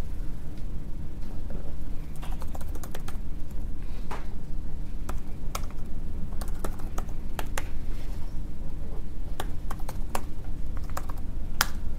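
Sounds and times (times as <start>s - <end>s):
steady low hum: 0.0s - 11.9s
laptop keyboard typing: 2.2s - 3.2s, 5.0s - 7.7s, 9.4s - 11.8s.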